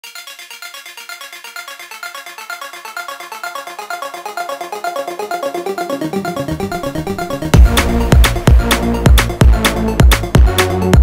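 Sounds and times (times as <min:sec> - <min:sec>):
fast synthesizer arpeggio: 0:03.6 - 0:10.6.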